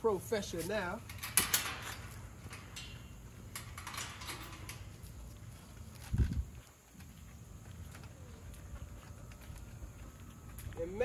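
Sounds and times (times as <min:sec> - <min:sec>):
wire gate and latch rattling: 0:00.3 - 0:05.2.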